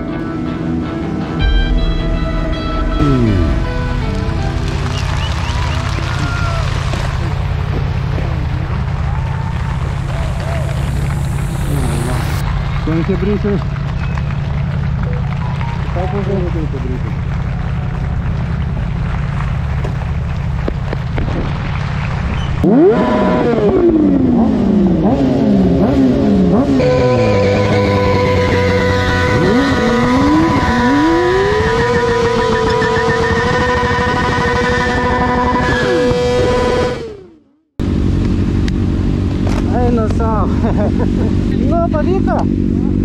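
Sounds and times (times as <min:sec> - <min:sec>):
second engine wavering: 0:00.0 - 0:20.6, 0:22.0 - 0:43.0
motorcycle engines revving: 0:02.8 - 0:43.0.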